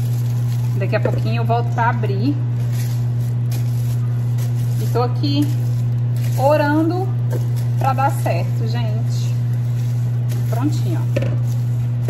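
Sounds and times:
plastic cling wrap rustling: 0.0s - 12.0s
steady low hum: 0.0s - 12.0s.

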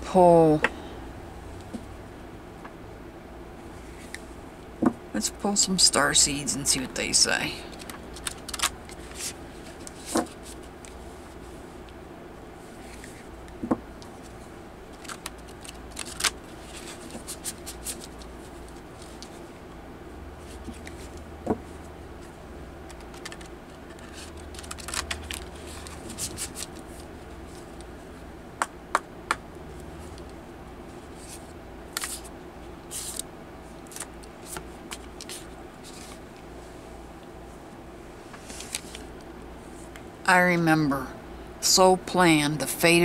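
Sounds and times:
cards being shuffled: 7.7s - 11.5s, 12.7s - 19.4s, 20.4s - 21.2s, 22.8s - 27.9s, 31.0s - 36.4s, 38.2s - 39.2s.

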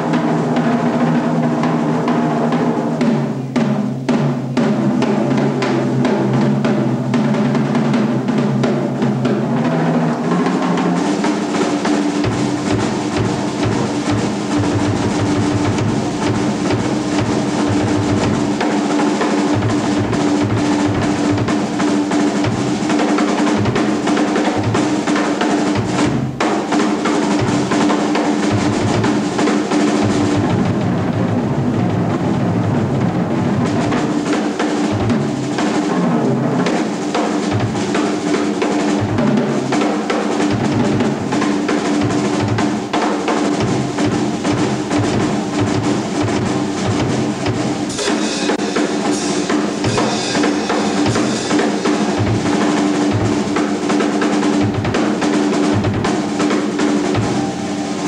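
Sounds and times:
rapid bass drum strokes: 0.0s - 58.0s
cymbals ringing: 47.9s - 53.4s, 56.1s - 58.0s.

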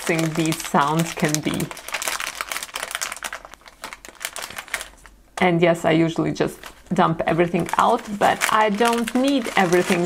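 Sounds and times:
plastic bag crinkling: 0.0s - 10.0s
small plastic parts shifting: 7.5s - 10.0s.

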